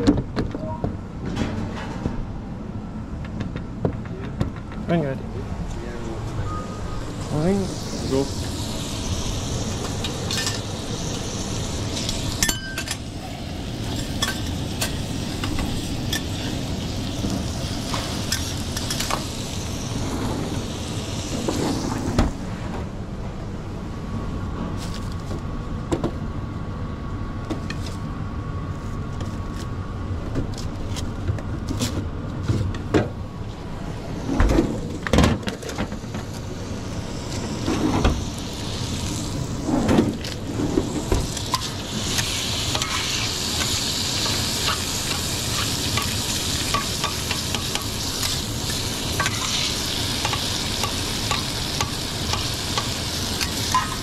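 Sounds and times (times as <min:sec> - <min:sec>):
low kitchen hum: 0:00.0 - 0:54.0
food sizzling on a griddle: 0:06.9 - 0:22.1, 0:36.2 - 0:54.0.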